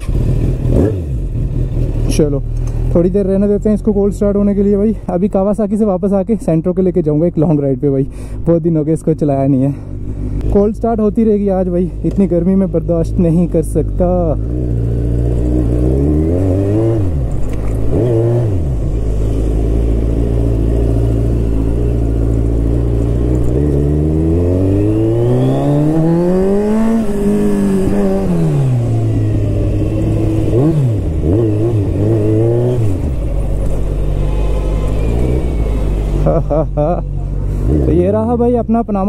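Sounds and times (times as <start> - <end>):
motorcycle engine accelerating: 0.0 - 4.9, 10.0 - 38.4.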